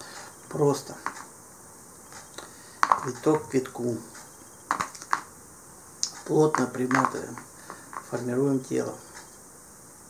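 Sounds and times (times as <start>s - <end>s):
person speaking: 0.0s - 1.3s, 2.1s - 5.3s, 6.0s - 9.3s
low steady background hiss: 0.0s - 10.0s.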